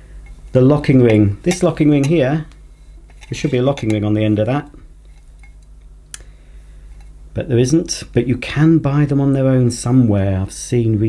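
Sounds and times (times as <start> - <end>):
faint low hum: 0.0 - 11.0
metal tubes clicking together: 0.2 - 2.4, 3.0 - 4.1, 5.1 - 6.2.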